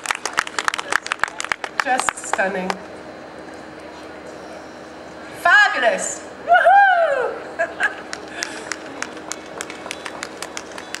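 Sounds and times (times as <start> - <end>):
person clapping: 0.0 - 2.4, 8.1 - 11.0.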